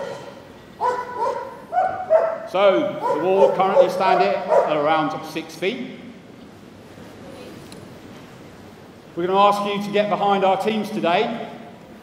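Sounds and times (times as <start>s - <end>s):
dog yelping: 0.0s - 4.8s.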